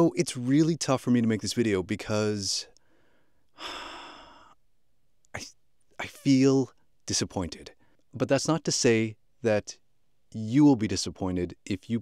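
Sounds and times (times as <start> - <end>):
man sighing: 3.6 - 4.6.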